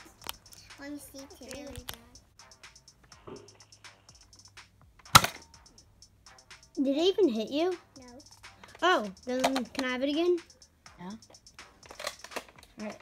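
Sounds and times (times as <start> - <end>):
foam dart blaster firing: 5.1 - 5.4.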